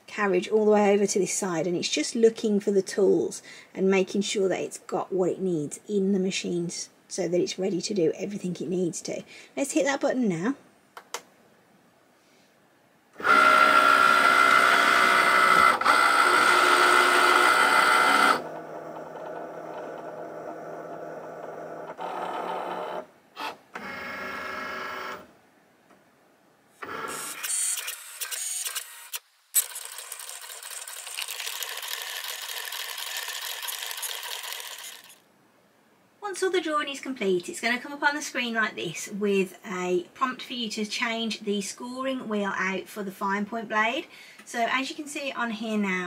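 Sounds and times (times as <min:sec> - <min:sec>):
stop-start motor runs: 0:13.2 - 0:23.0, 0:29.6 - 0:35.2
cutting machine motor whine: 0:13.2 - 0:25.2, 0:26.8 - 0:35.2.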